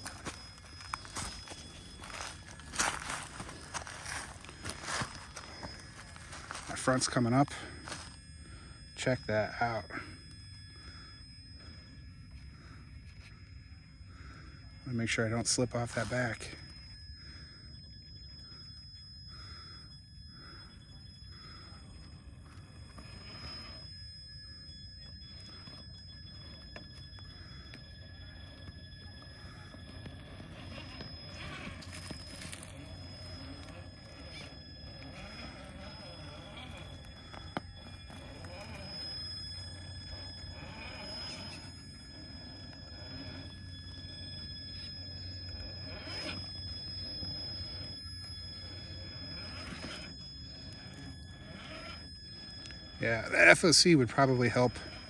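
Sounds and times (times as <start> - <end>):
toy truck motor running: 0.0 - 55.0.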